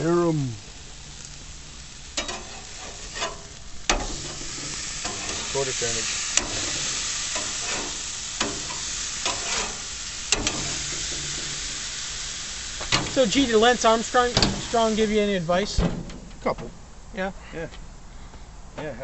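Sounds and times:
burger patties sizzling on grill: 0.0 - 18.0.

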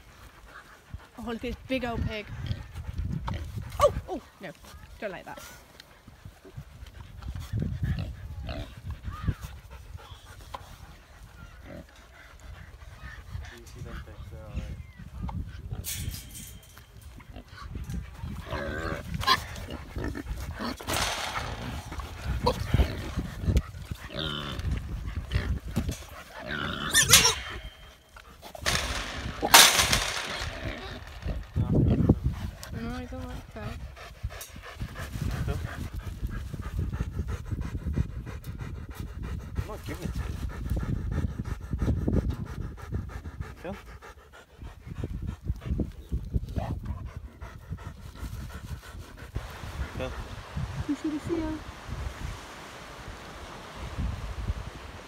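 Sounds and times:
dog panting: 0.0 - 15.7, 17.4 - 26.6, 31.2 - 51.6
pigs grunting: 7.6 - 9.3, 11.3 - 14.3, 17.2 - 34.1.

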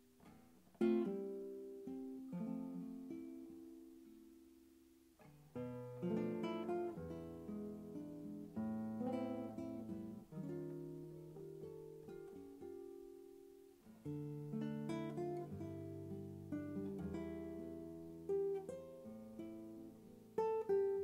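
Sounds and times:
classical guitar playing: 0.0 - 21.0.

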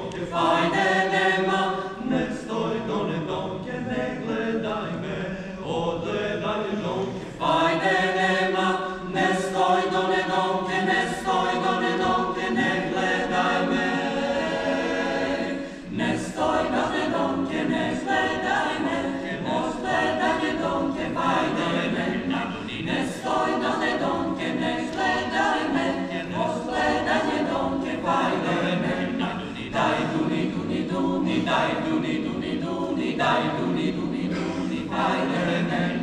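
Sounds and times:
mixed choir singing a cappella: 0.0 - 36.0.

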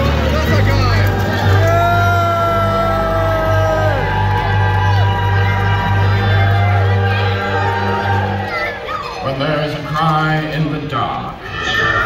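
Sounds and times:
audience yelling and whooping: 0.0 - 9.7, 11.4 - 12.0.

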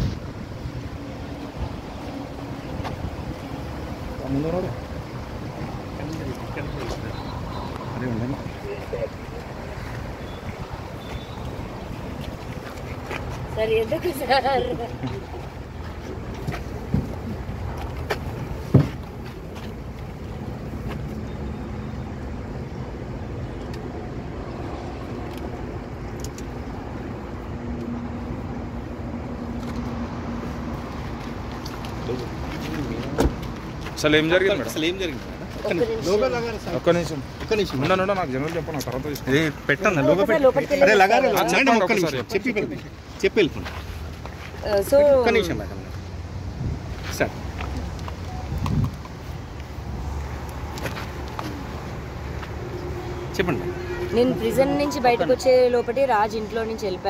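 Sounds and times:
wind buffeting microphone: 0.0 - 4.1, 46.5 - 47.0
vehicle engine rumbling: 0.0 - 40.8, 41.6 - 57.0
faint background sounds: 0.6 - 57.0.

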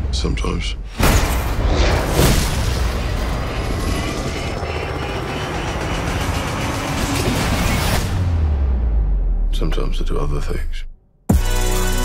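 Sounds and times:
heavy low rumble: 1.5 - 10.9
helicopter rotor and engine: 2.6 - 8.1.

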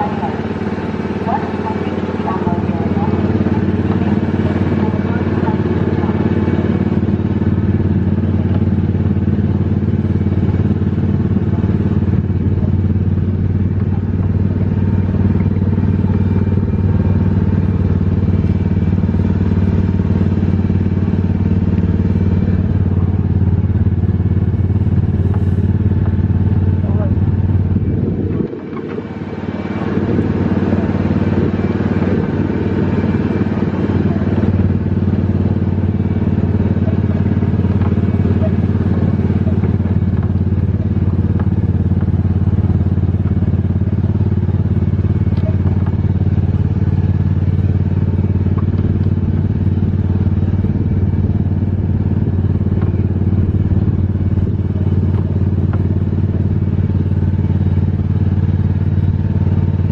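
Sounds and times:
small petrol engine droning: 0.0 - 59.9.

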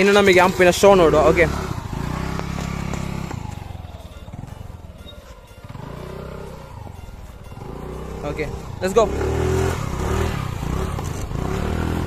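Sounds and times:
background music: 0.0 - 12.0
scooter engine running: 0.0 - 12.0.

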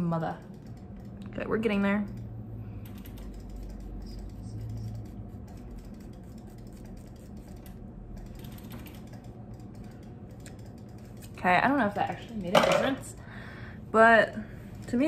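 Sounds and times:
scissors snipping hair: 2.9 - 11.4.

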